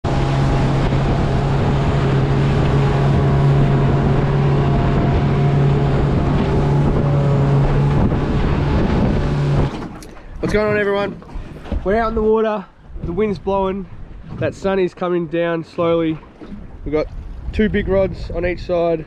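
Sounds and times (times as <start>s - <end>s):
motorboat engine drone: 0.0s - 11.8s
rushing water: 0.0s - 19.0s
wind buffeting microphone: 0.0s - 19.0s.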